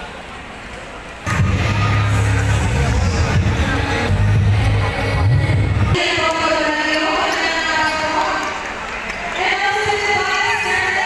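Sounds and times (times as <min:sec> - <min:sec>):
crowd voices in echoing gym: 0:00.0 - 0:11.0
bass-heavy music over sound system: 0:01.3 - 0:06.6.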